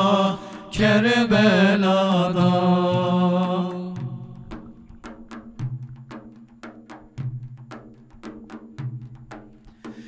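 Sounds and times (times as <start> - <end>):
frame drums playing rhythm: 2.3 - 10.0.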